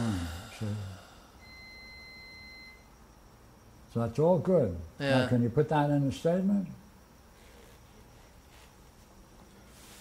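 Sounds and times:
faint electronic beep: 0:01.4 - 0:03.3.

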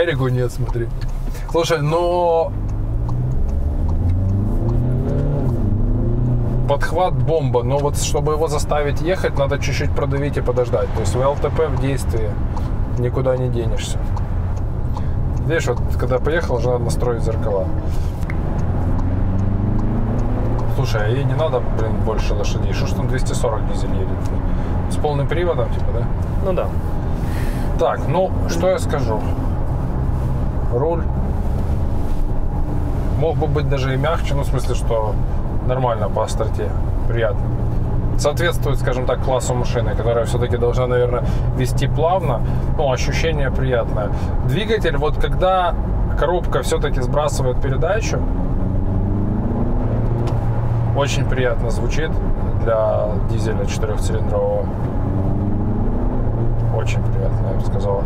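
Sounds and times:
car engine drone from inside: 0:00.0 - 0:58.0.

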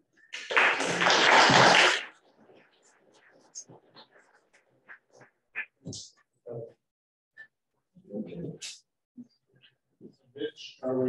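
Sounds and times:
audience applauding: 0:00.3 - 0:02.2.

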